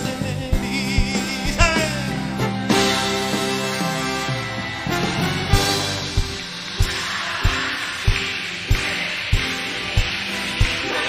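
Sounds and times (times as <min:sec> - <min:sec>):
bass drum beat: 0:00.0 - 0:03.7, 0:04.9 - 0:11.0
band holding chords: 0:00.0 - 0:11.0.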